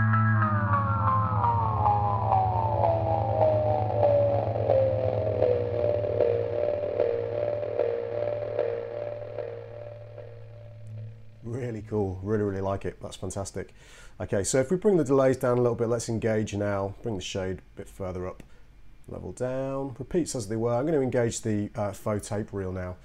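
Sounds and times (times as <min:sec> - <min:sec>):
delay pedal echoes: 0:00.0 - 0:12.0.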